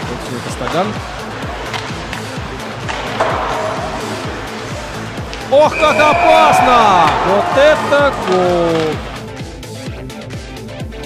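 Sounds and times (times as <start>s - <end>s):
skates and sticks on ice: 0.0s - 6.2s, 7.0s - 9.5s
background music with beat: 0.0s - 11.0s.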